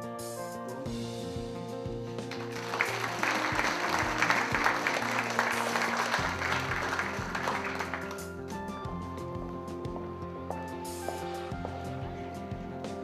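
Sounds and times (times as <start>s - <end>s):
instrumental background music: 0.0s - 13.0s
audience applauding: 2.2s - 8.5s.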